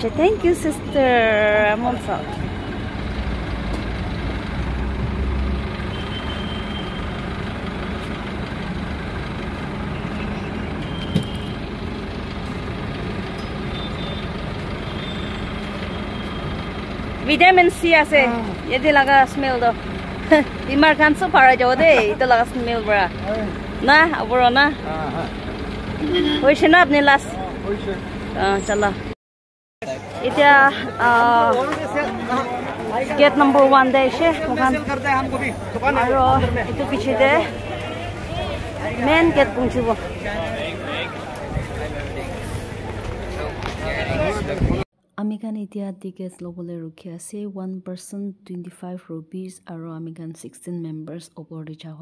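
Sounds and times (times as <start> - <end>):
minibus engine idling: 0.0 - 29.1, 29.9 - 44.7.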